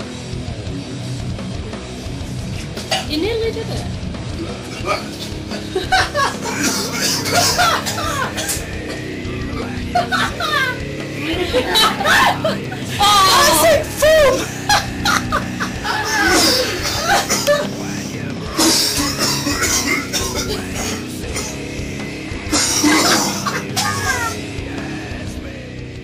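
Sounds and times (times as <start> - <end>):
heavy rock music: 0.0 - 26.0
men laughing and shouting: 4.5 - 25.2.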